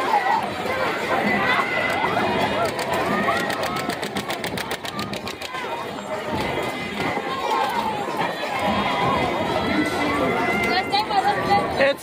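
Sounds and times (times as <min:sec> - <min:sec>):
carnival crowd chatter: 0:00.0 - 0:12.0
rapid even clicks: 0:01.9 - 0:05.6.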